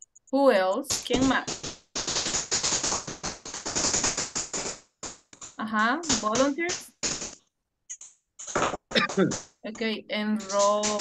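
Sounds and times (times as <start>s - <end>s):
rapid irregular clicking crackle: 0.0s - 11.0s.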